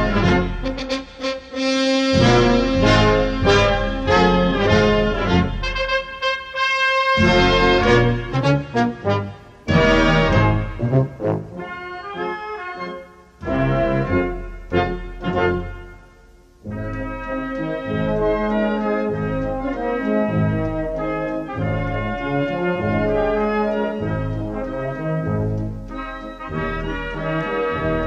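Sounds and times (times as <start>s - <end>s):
wind band playing funeral march: 0.0s - 28.0s.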